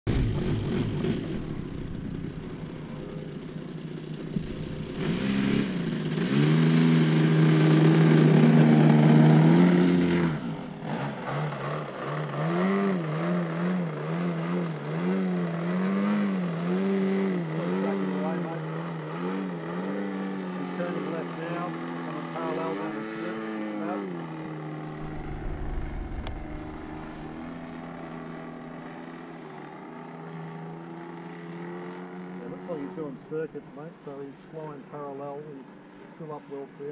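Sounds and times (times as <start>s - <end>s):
model plane engine and propeller: 0.1s - 36.9s.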